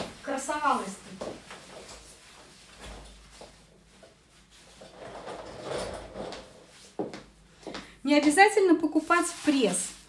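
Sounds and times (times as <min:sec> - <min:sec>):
fabric rustling: 0:00.0 - 0:07.2, 0:08.9 - 0:10.0.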